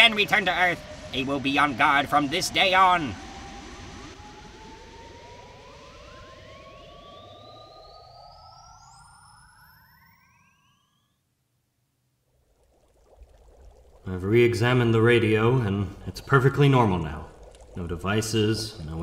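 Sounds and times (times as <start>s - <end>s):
electronic whines rising in pitch: 0.0s - 11.2s.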